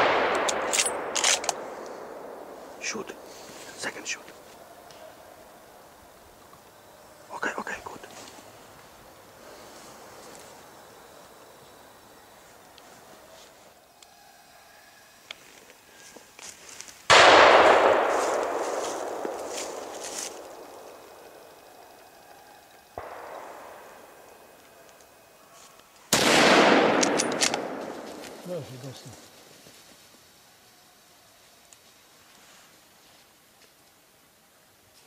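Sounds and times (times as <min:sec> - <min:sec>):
gunshots with echo: 0:00.0 - 0:03.4, 0:17.1 - 0:21.5, 0:23.0 - 0:24.5, 0:26.1 - 0:28.5.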